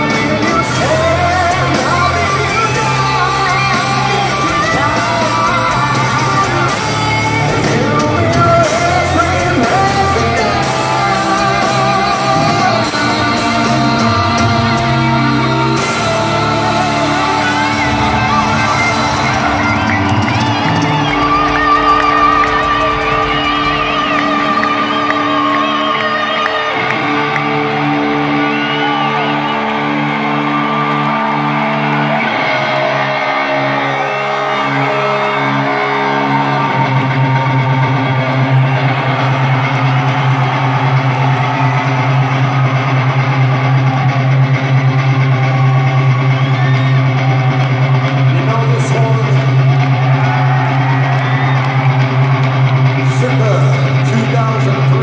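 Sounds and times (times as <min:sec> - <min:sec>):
live rock concert music: 0:00.0 - 0:55.0.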